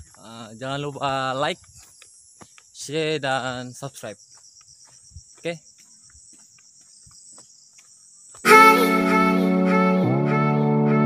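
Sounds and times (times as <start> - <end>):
insects trilling: 0.0 - 8.8.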